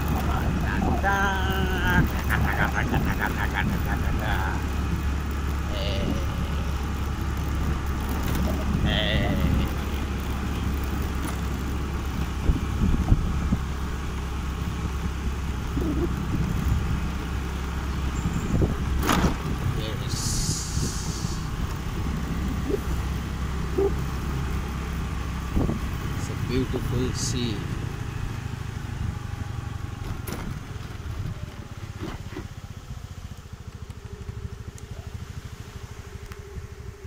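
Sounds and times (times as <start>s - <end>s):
wind buffeting microphone: 0.0s - 5.2s, 6.0s - 26.4s
motorbike engine running: 0.0s - 37.0s.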